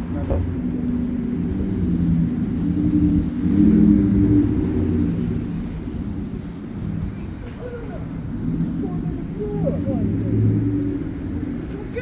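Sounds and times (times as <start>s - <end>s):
vehicle engine passing: 0.0s - 12.0s.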